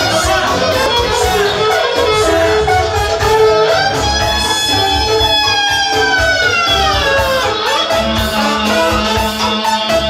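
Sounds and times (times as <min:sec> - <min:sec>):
clarinet long sliding note: 0:00.0 - 0:10.0
steady low beat: 0:00.0 - 0:10.0.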